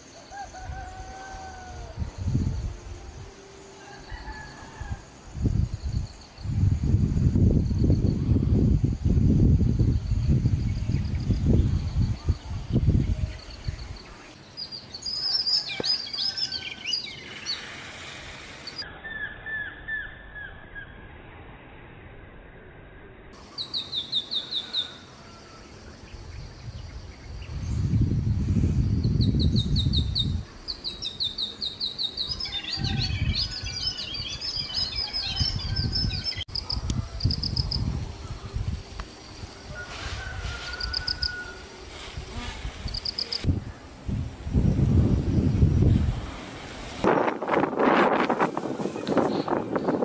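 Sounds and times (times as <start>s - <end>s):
songbirds chirping: 9.8s - 20.9s, 23.4s - 28.0s, 28.8s - 42.1s.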